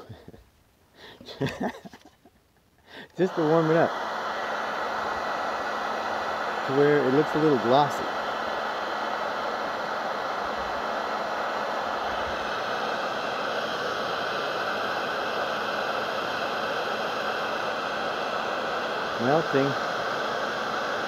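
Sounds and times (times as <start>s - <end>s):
faint motor hum: 0.0s - 21.0s
heat gun fan hissing: 2.8s - 21.0s.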